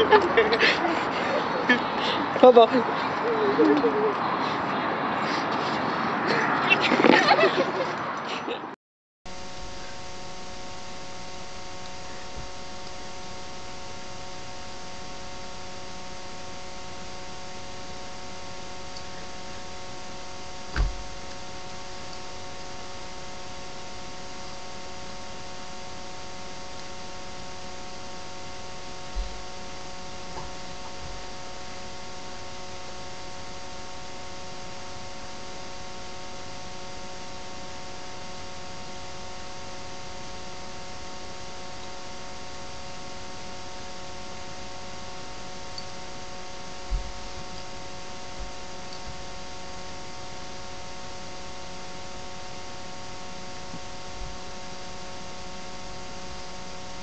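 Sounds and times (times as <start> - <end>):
electrical hum and hiss: 0.0 - 8.1, 9.3 - 57.0
whining tones: 9.3 - 32.0
low thump: 20.7 - 21.1.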